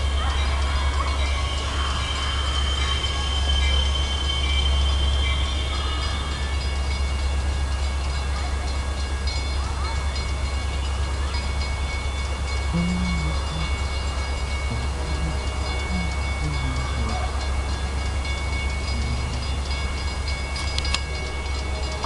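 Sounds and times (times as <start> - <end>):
diesel locomotive rumble: 0.0 - 22.0
thin high tones: 0.0 - 22.0.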